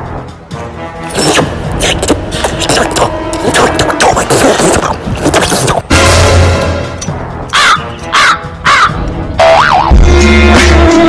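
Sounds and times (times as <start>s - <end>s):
crow cawing: 7.5s - 9.0s
music with heavy bass line: 9.4s - 11.0s.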